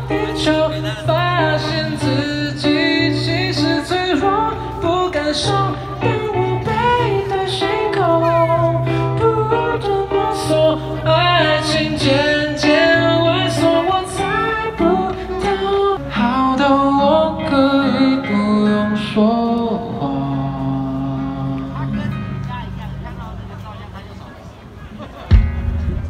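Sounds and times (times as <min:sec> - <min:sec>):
live pop band playing: 0:00.0 - 0:23.9, 0:25.3 - 0:26.0
held bass line: 0:25.3 - 0:26.0.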